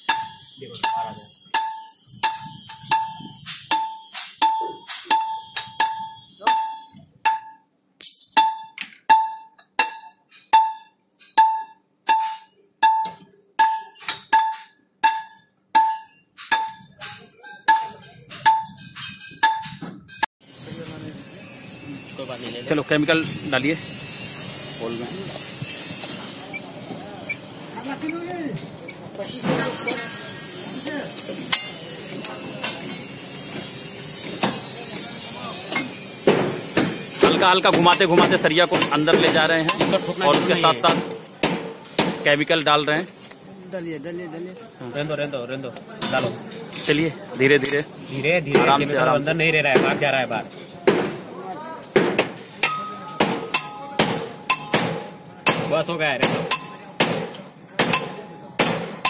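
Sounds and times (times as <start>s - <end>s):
metal striking metal ringing: 0.0s - 20.3s, 29.6s - 42.7s, 52.6s - 59.0s.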